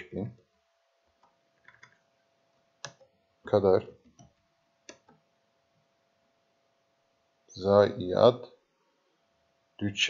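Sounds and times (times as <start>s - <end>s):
computer keyboard keystrokes: 1.2s - 2.0s.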